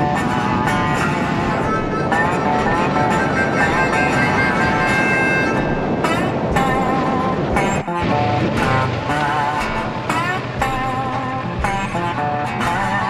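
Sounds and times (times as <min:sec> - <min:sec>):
instrumental music with held notes: 0:00.0 - 0:13.0.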